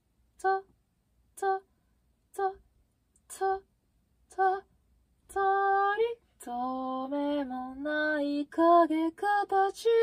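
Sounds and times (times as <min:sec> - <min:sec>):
woman singing unaccompanied: 0:00.3 - 0:01.7, 0:02.3 - 0:10.0.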